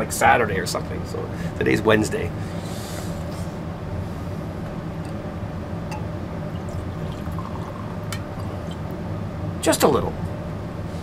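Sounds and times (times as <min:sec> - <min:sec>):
steady low hum: 0:00.0 - 0:11.0
liquid pouring into a glass: 0:06.5 - 0:08.8.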